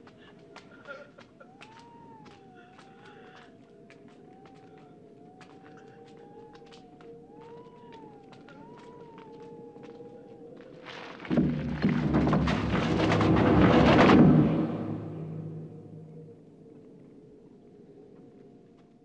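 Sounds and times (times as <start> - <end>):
low drone: 11.2 - 17.2.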